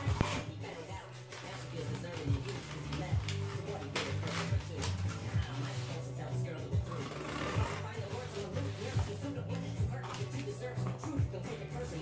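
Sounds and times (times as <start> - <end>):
person's voice: 0.0 - 12.0
pop music from a radio: 0.0 - 12.0.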